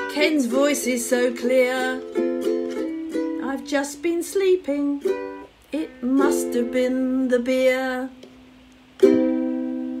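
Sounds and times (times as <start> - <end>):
ukulele chord ringing: 0.0 - 3.6, 9.0 - 10.0.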